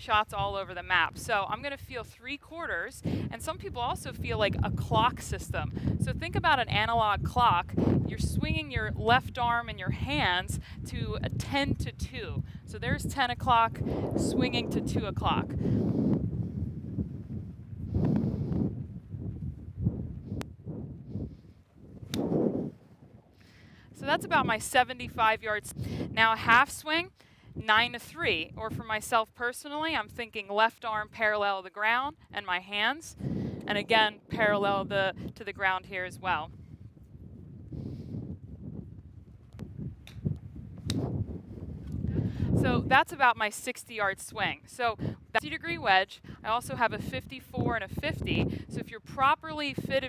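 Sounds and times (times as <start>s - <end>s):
gusty wind on microphone: 0.0s - 50.0s.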